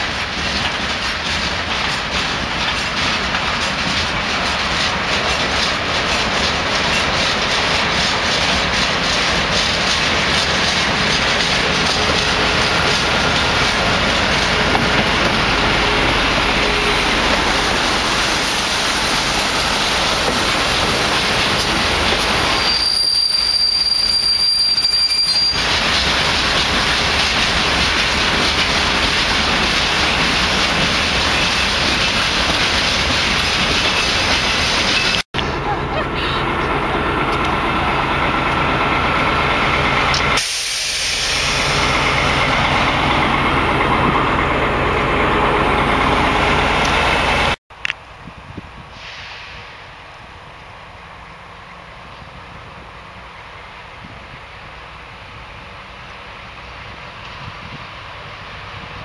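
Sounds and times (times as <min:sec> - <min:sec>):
railway wagons rolling past: 0:00.0 - 0:59.0
high wheel squeal: 0:21.3 - 0:25.7.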